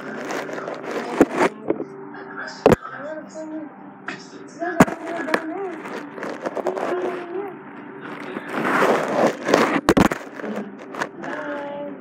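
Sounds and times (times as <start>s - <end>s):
phone scraping against wall: 8.2s - 10.3s
child's voice: 11.2s - 12.0s.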